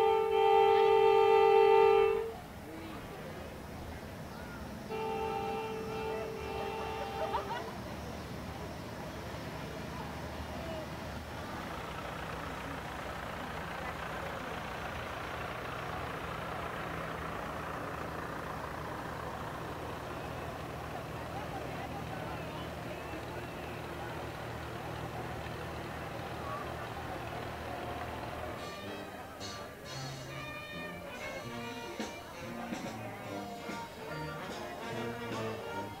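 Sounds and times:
crowd chatter: 0.0s - 36.0s
tractor engines humming: 0.0s - 36.0s.

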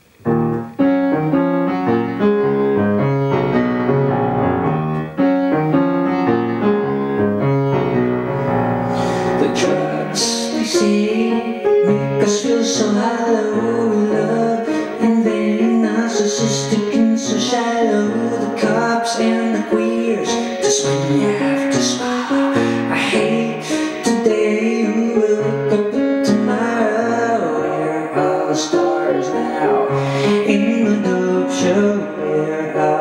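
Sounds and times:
piano playing chords: 0.0s - 33.0s.

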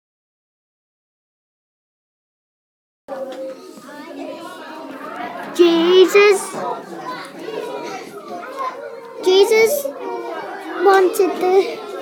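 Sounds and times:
children chattering: 3.1s - 12.0s.

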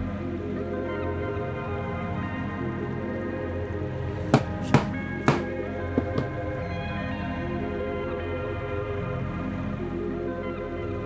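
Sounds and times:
background music: 0.0s - 11.0s
mallet striking chisel on leather: 4.2s - 6.4s.

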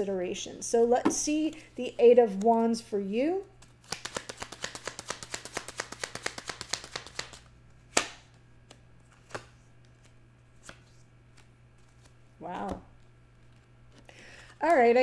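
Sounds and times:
cards being shuffled: 3.5s - 14.1s
card snap: 3.8s - 9.5s.

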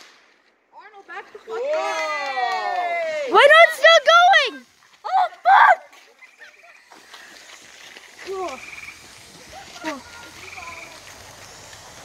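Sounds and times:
faint firework hiss: 0.0s - 5.2s, 6.1s - 12.0s.

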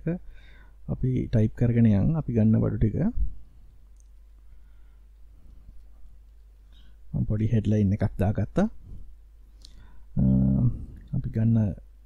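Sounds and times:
person speaking: 10.1s - 11.9s.

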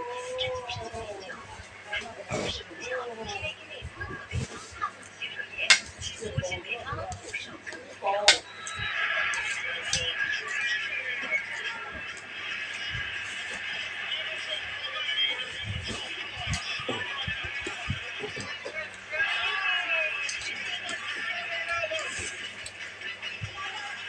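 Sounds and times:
background voices: 0.0s - 24.0s.

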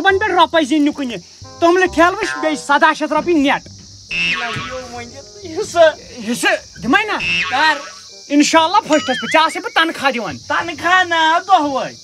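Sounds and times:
man talking: 0.0s - 3.7s, 4.4s - 12.0s
insects chirring: 0.0s - 12.0s.

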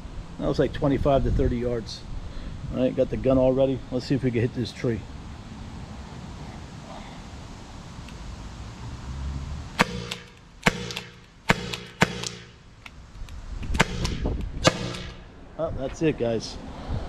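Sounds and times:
launcher firing sharp pops: 9.8s - 13.0s, 13.6s - 15.3s.

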